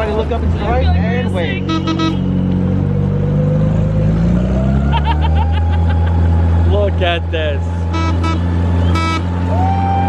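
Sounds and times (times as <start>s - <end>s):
car engine running: 0.0s - 10.0s
high voices or laughter: 4.9s - 6.3s.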